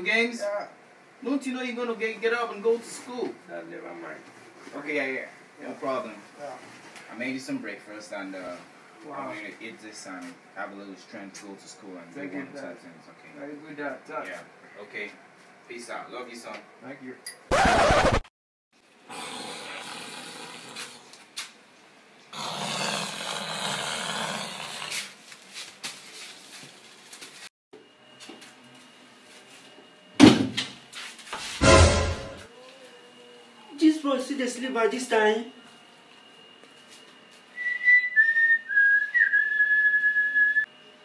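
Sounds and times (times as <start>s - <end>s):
person snoring: 19.1s - 21.1s, 22.4s - 25.0s
person whistling: 37.6s - 40.7s.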